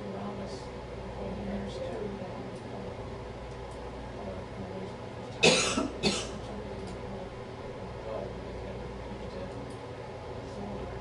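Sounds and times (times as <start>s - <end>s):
low room hum: 0.0s - 11.0s
person coughing: 5.4s - 6.4s.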